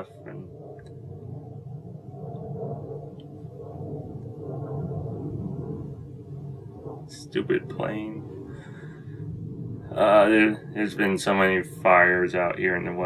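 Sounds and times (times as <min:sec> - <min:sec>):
jet plane flying overhead: 0:00.0 - 0:13.0.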